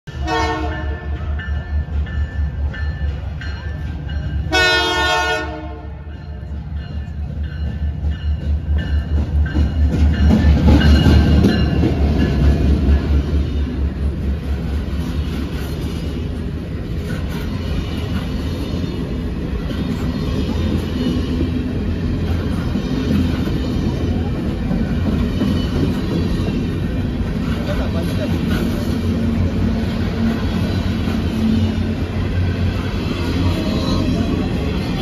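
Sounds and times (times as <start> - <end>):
train horn blasts: 0.1 - 1.3, 4.5 - 6.1
locomotive engine pulsing: 5.9 - 35.0.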